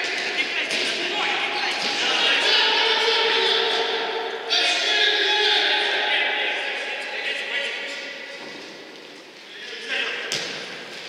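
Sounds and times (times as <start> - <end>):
players shouting: 0.0 - 8.2.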